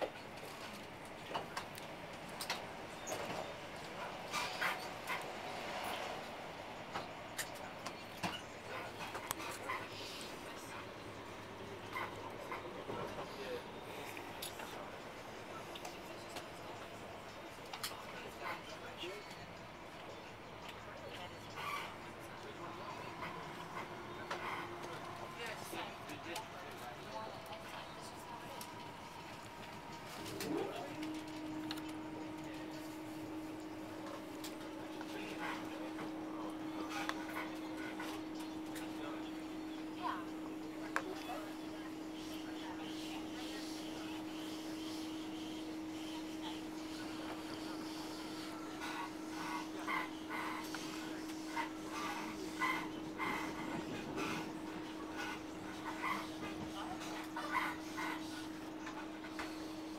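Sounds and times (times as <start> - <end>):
train carriage running noise: 0.0 - 59.9.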